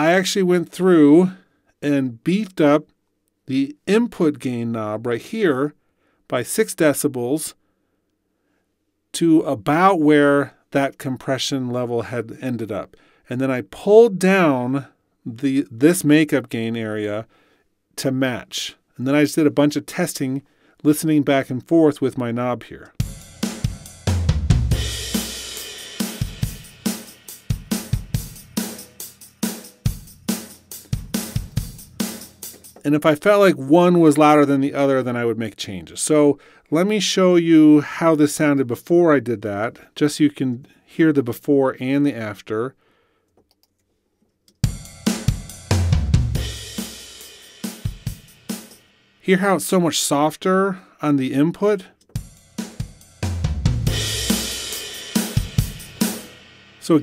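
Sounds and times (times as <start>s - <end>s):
drum kit groove: 22.9s - 34.6s, 44.6s - 49.6s, 52.0s - 57.0s
cymbal crash over kick drum: 23.0s - 32.5s, 44.7s - 49.0s, 52.2s - 56.8s.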